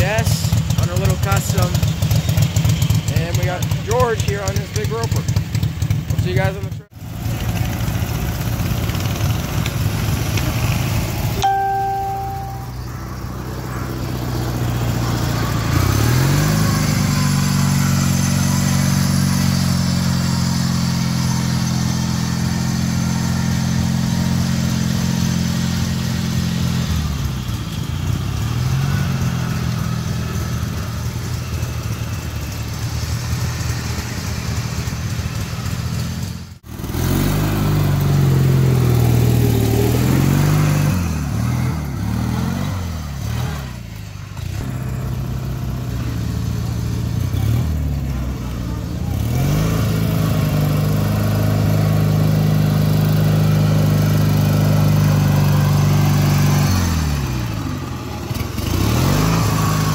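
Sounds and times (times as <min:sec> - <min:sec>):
lawn mower engine revving: 0:00.0 - 0:59.9.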